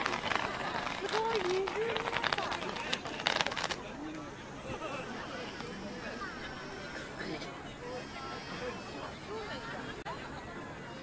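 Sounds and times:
firework sparks crackling: 0.0 - 4.2
spectators talking: 0.0 - 11.0.

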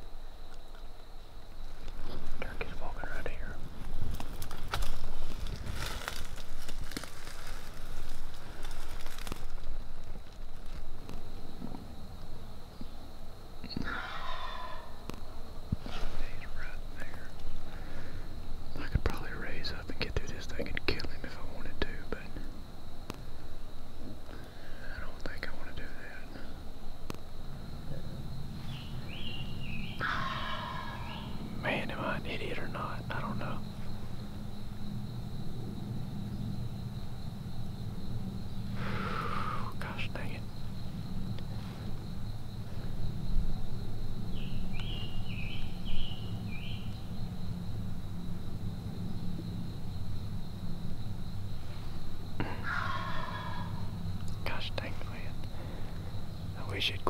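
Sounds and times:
close rustling: 3.7 - 11.2
turkey gobbling: 13.8 - 14.8, 30.0 - 31.4, 52.5 - 53.8.

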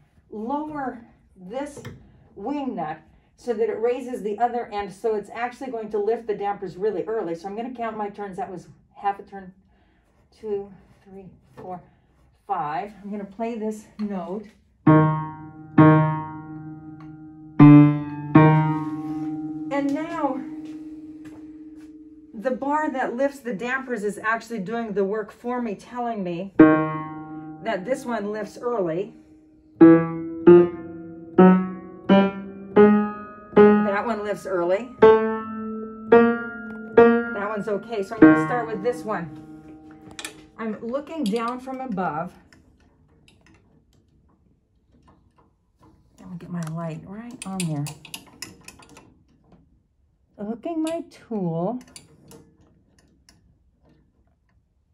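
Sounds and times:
piano note ringing: 14.9 - 22.7, 26.6 - 40.6.

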